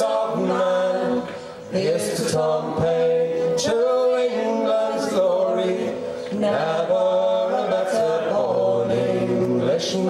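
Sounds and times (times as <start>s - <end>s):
man singing folk song: 0.0s - 10.0s.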